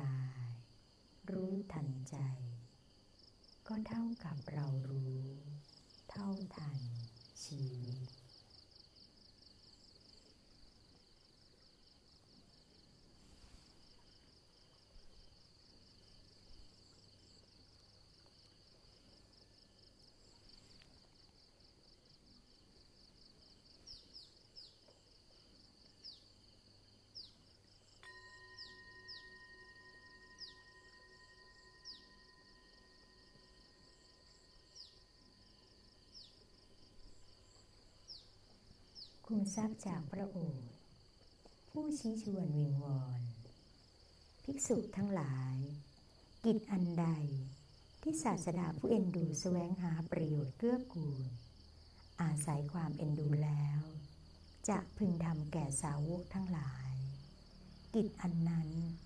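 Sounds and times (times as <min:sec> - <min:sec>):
faint steady tone: 0:00.0 - 0:59.0
insects chirping: 0:00.0 - 0:59.0.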